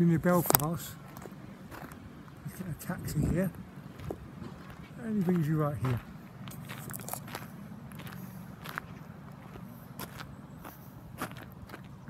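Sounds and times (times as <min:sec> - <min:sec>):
low background hum: 0:00.0 - 0:12.0
footsteps on paving: 0:00.3 - 0:12.0.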